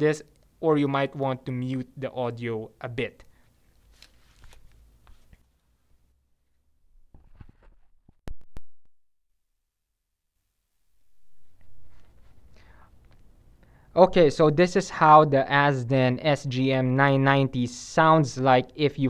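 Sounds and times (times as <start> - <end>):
faint rustling: 11.4 - 13.6.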